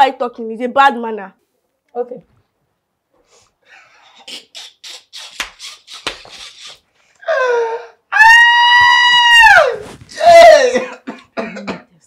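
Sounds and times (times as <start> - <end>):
coughing bursts: 3.9 - 6.8, 10.6 - 12.0
high-pitched vocal cry: 4.2 - 11.0.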